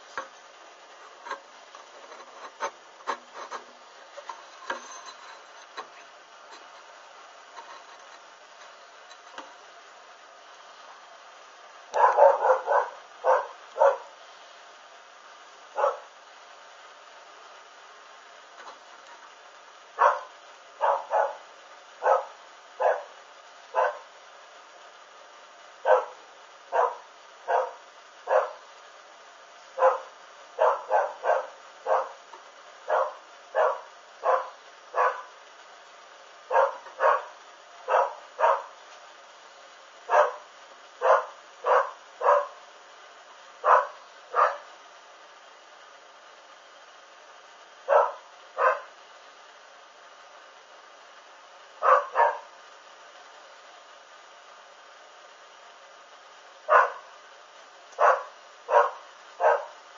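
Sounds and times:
dog barking: 11.9s - 14.1s, 15.7s - 16.2s, 20.0s - 24.1s, 25.8s - 28.7s, 29.8s - 32.2s, 32.9s - 35.4s, 36.5s - 38.8s, 40.1s - 42.6s, 43.6s - 44.7s, 47.9s - 49.0s, 51.8s - 52.5s, 56.7s - 57.1s, 58.0s - 59.8s.

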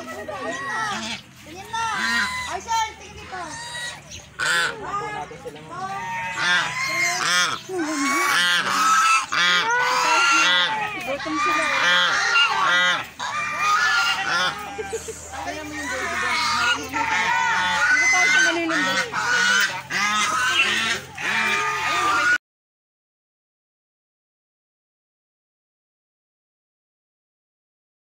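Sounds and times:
geese honking: 0.0s - 22.4s.

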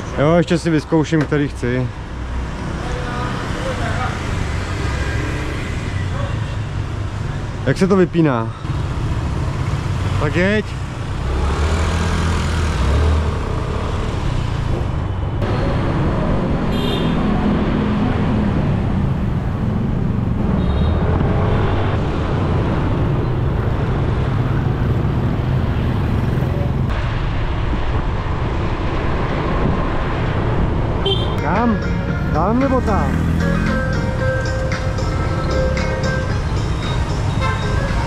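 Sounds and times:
hum of motorbikes and cars: 0.0s - 38.0s.

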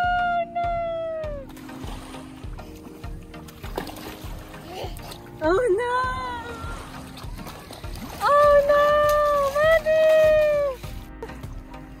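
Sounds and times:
faint shallow water: 0.0s - 12.0s.

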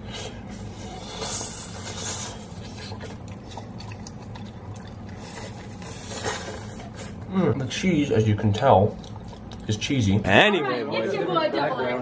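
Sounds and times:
steady low hum: 0.0s - 12.0s
wet chewing: 0.1s - 10.2s.

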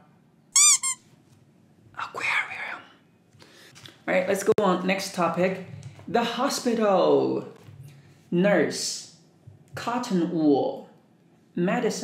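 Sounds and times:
rubber duck squeaks: 0.6s - 1.0s.

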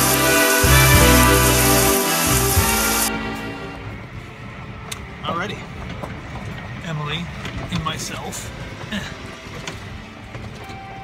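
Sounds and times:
golf cart rumbling: 0.0s - 11.0s.

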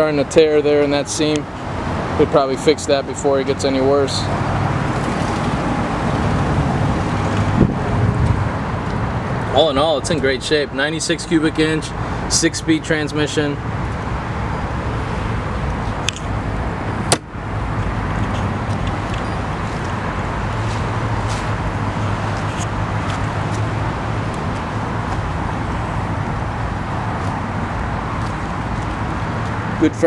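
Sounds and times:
traffic noise with low hum: 0.0s - 30.0s.

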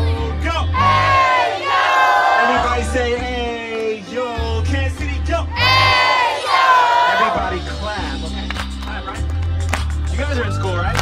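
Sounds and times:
backing music: 0.0s - 11.0s
crowd yelling long high cries: 0.8s - 2.8s, 5.6s - 7.4s.

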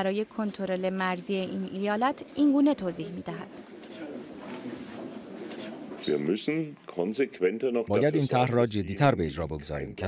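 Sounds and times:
murmur of people talking: 0.0s - 7.1s.

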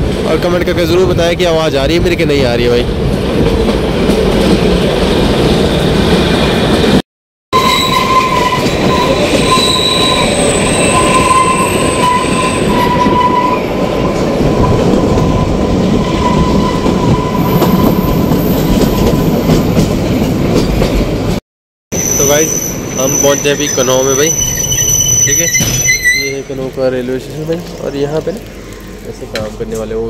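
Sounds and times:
train rumble and clatter: 0.0s - 7.0s, 7.8s - 21.4s, 22.2s - 30.0s
wavering wheel squeal: 7.6s - 19.3s, 22.0s - 26.7s.

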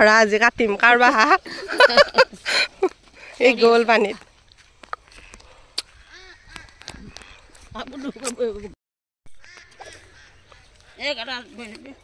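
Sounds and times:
faint waterfowl calls: 5.0s - 8.4s, 9.4s - 11.7s.

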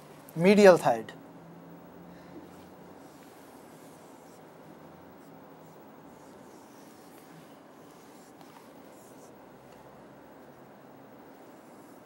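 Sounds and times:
low room hum: 0.0s - 12.0s
marker pen on whiteboard: 2.4s - 12.0s.

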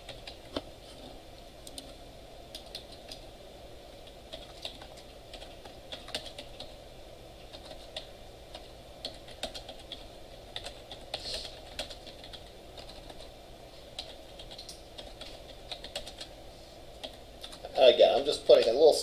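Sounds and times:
steady background hum: 0.0s - 19.0s
typing on computer keyboard: 4.3s - 6.7s, 7.5s - 13.3s, 14.0s - 16.3s
man speaking: 17.7s - 19.0s.

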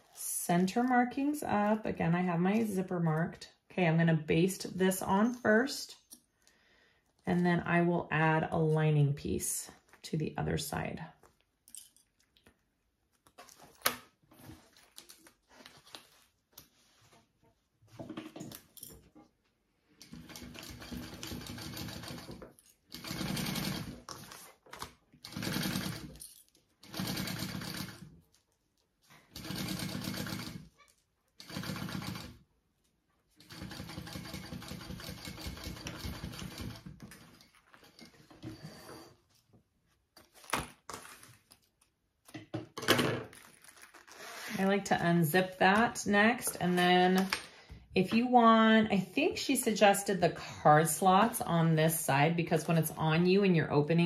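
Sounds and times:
sewing machine stitching: 20.0s - 24.4s, 25.2s - 26.2s, 26.8s - 28.1s, 29.3s - 30.8s, 31.4s - 32.4s, 33.4s - 39.0s.

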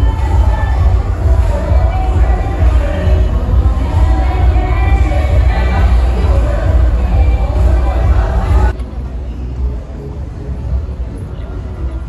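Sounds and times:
voices on a busy street: 0.0s - 12.0s.

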